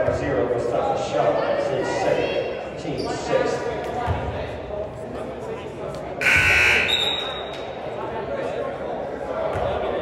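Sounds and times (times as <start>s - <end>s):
murmur of crowd voices: 0.0s - 10.0s
scoreboard buzzer: 6.2s - 7.1s.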